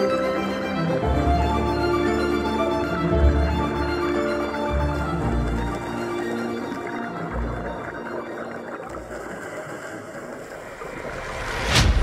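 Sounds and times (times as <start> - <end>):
muffled underwater rush: 4.6 - 12.0.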